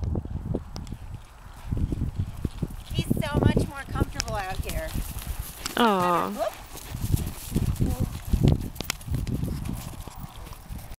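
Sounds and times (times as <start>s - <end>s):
horse hoofbeats on dirt: 0.0s - 11.0s.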